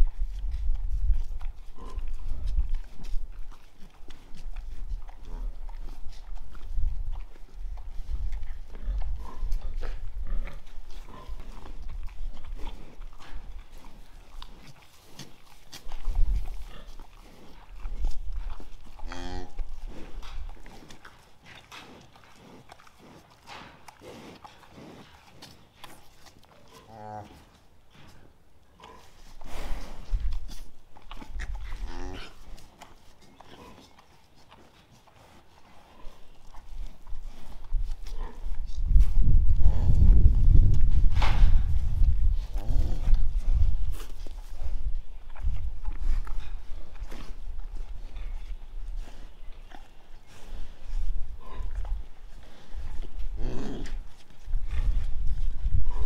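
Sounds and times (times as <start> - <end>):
cow licking calf: 0.0 - 56.0
cow low calls: 15.7 - 21.1, 30.5 - 32.6, 45.4 - 56.0.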